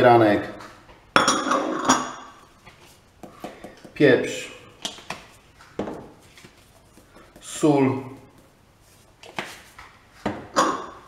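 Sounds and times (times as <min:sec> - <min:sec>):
glass dishes clinking: 0:01.2 - 0:02.4.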